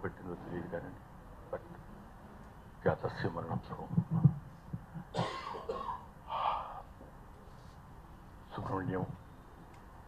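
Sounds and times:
man speaking into microphone: 0:00.0 - 0:01.7, 0:02.8 - 0:04.2, 0:08.5 - 0:09.2.

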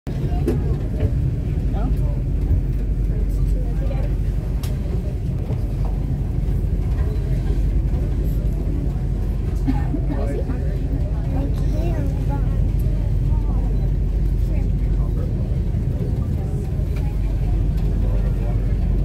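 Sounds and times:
faint voices of passengers: 0:00.1 - 0:19.0
low rumble of wind: 0:00.1 - 0:19.0.

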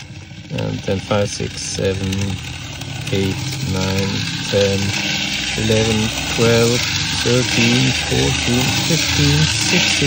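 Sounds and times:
toy trolley motor hissing: 0:00.0 - 0:10.0.

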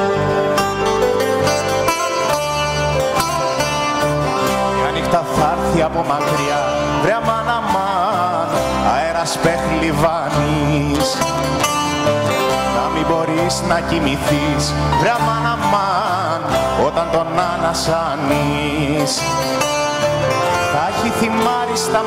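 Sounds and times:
bouzouki and acoustic guitars: 0:00.0 - 0:22.0
pulsing bass: 0:00.0 - 0:22.0
wavering lead melody: 0:00.0 - 0:22.0.

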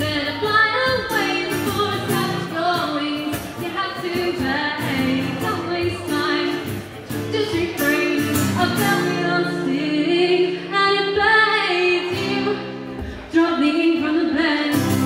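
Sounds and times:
strummed acoustic guitar: 0:00.0 - 0:15.0
woman singing: 0:00.0 - 0:15.0.

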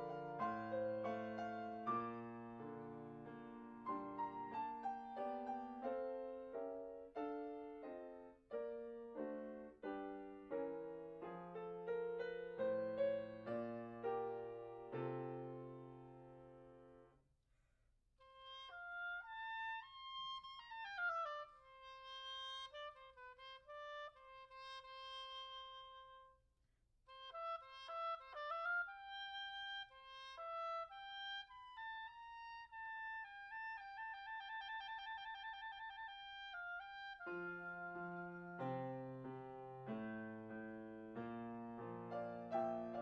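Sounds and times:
solo clarinet: 0:00.0 - 0:17.1, 0:18.2 - 0:26.4, 0:27.1 - 0:43.0.

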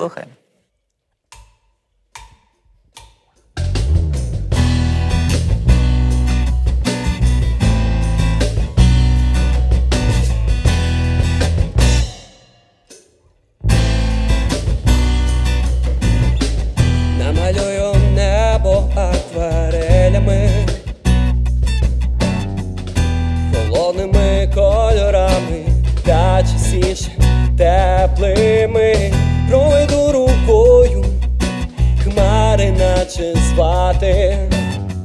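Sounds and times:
live band playing: 0:03.6 - 0:12.2, 0:13.7 - 0:35.0.

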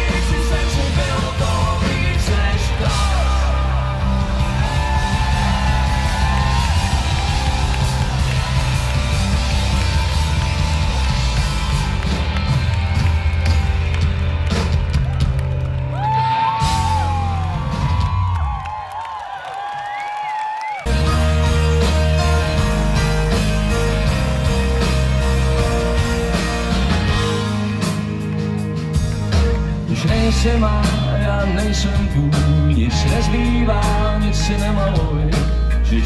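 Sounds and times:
live rock band playing: 0:00.0 - 0:18.6, 0:20.8 - 0:36.0.

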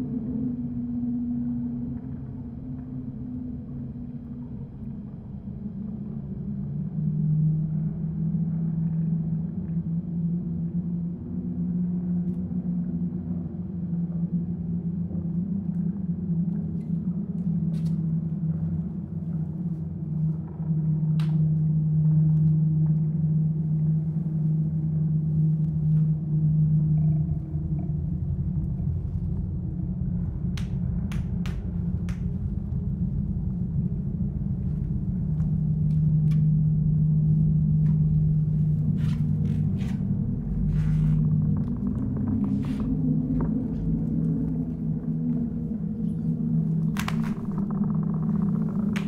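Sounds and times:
deep low drone: 0:00.0 - 0:49.0.

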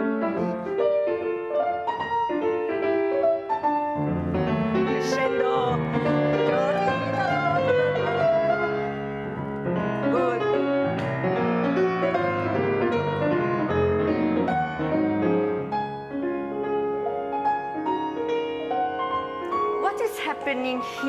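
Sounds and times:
classical grand piano: 0:00.0 - 0:21.0.

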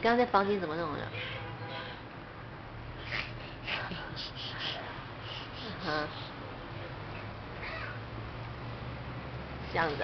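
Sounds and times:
steady low hum: 0:02.2 - 0:10.0.

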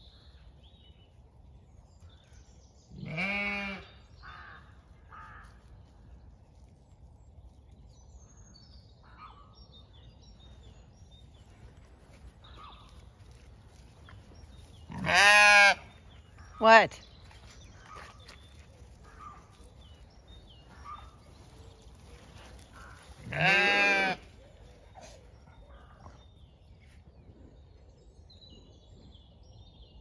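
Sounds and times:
sheep bleating: 0:03.0 - 0:03.9, 0:14.9 - 0:15.9, 0:23.2 - 0:24.3.

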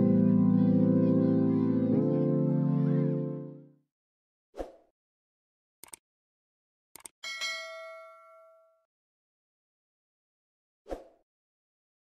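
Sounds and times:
bright bell ding: 0:07.2 - 0:08.8.

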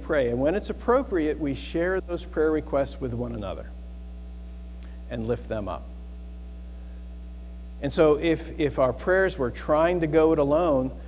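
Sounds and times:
man speaking: 0:00.0 - 0:03.7, 0:05.1 - 0:06.0, 0:07.8 - 0:11.0
electrical mains hum: 0:00.0 - 0:11.0.

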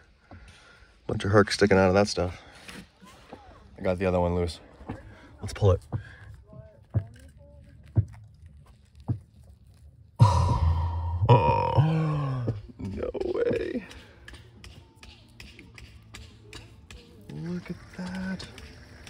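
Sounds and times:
man's drawn-out wordless vocal: 0:10.2 - 0:13.7.

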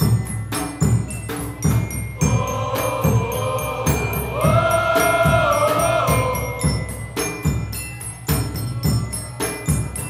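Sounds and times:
steady drum beat: 0:00.0 - 0:10.0.

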